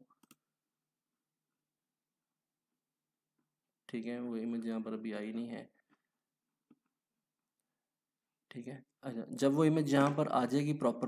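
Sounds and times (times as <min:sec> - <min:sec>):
computer mouse clicks: 0:00.0 - 0:00.4.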